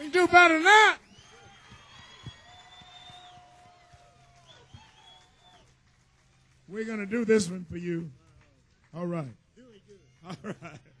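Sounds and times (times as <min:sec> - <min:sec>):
faint audience applause: 0:00.0 - 0:11.0
audience whistles: 0:01.0 - 0:05.8.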